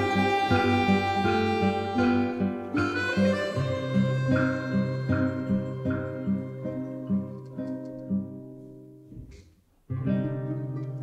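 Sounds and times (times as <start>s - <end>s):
loud plucked-string music: 0.0s - 8.0s
plucked string orchestra: 0.0s - 8.6s, 9.9s - 11.0s.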